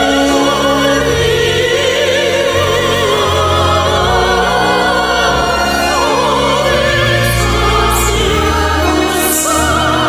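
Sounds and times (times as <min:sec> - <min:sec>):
low instrumental accompaniment: 0:00.0 - 0:10.0
operatic soprano singing: 0:00.0 - 0:10.0.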